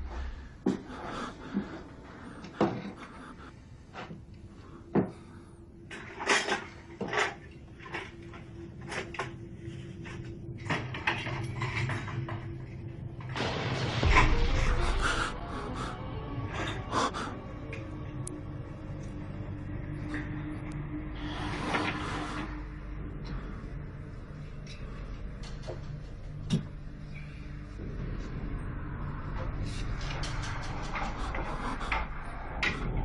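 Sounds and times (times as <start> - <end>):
deep boom: 13.4 - 16.0.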